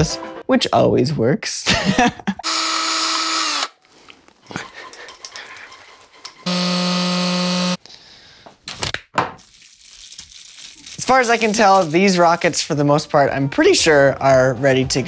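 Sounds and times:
electric motor whine: 6.5 - 7.8.

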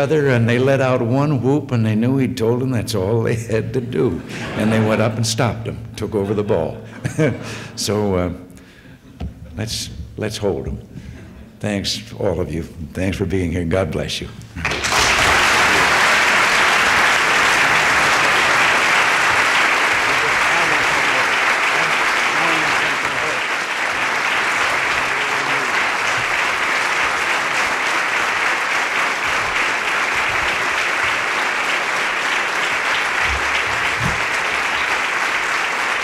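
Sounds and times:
audience applauding: 14.6 - 36.0.

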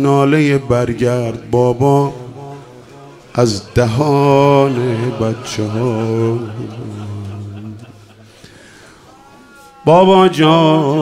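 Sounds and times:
man singing a lament: 0.0 - 8.0, 9.1 - 11.0.

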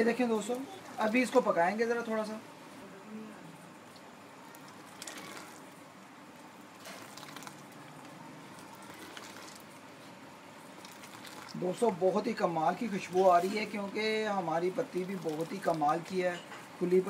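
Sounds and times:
tea bubbling in a pot: 0.0 - 2.7, 3.6 - 17.0
liquid splashing: 3.8 - 16.4
liquid pouring into a pot: 4.0 - 10.0, 10.6 - 16.4.

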